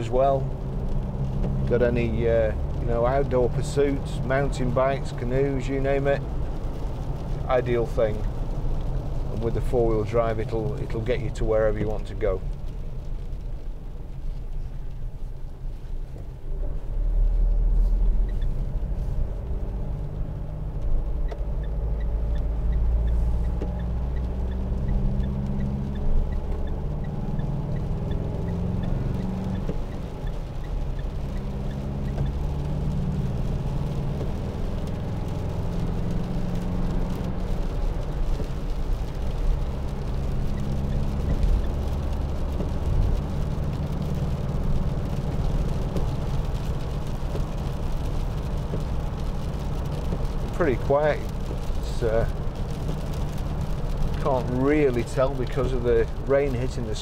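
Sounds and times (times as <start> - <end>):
diesel engine driving: 0.0 - 57.0
rain hitting windscreen: 0.0 - 57.0
tyres on wet road: 0.0 - 57.0
faint regular ticking: 18.0 - 57.0.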